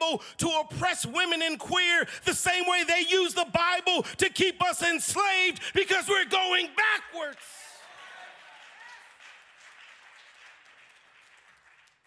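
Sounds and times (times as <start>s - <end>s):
faint applause: 7.1s - 12.0s.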